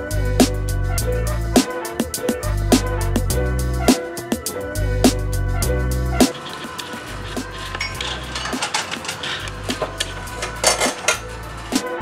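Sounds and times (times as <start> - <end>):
background music: 0.0 - 12.0
utensils clinking on cookware: 6.3 - 11.4.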